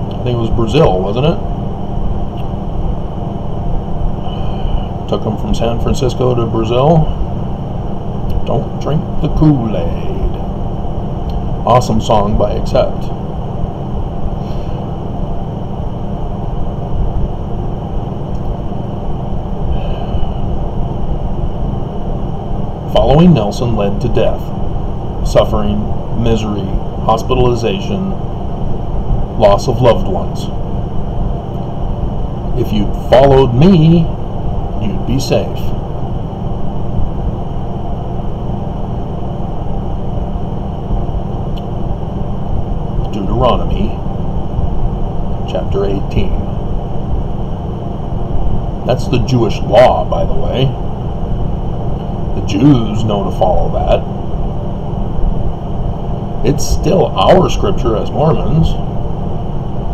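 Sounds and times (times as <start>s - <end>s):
faint high whine: 0.0s - 59.9s
low background rumble: 0.0s - 59.9s.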